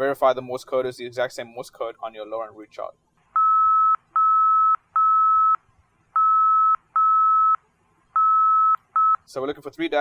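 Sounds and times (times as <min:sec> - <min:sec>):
morse code beeps: 0:03.4 - 0:05.6, 0:06.2 - 0:07.6, 0:08.2 - 0:09.3.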